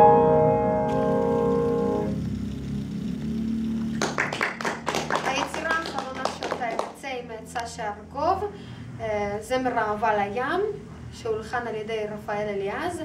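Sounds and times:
piano chord ringing: 0:00.0 - 0:02.6
audience applause: 0:03.9 - 0:07.0.

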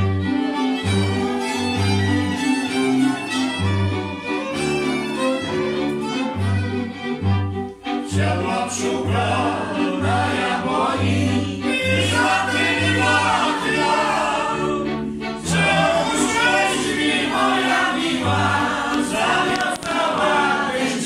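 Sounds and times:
fiddles playing dance tune: 0:00.0 - 0:21.0
men singing as group: 0:08.1 - 0:21.0.

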